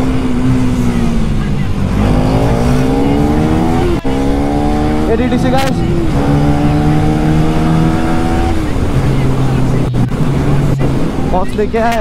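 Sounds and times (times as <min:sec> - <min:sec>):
motorcycle engine accelerating: 0:00.0 - 0:12.0
wind rush on microphone: 0:00.0 - 0:12.0.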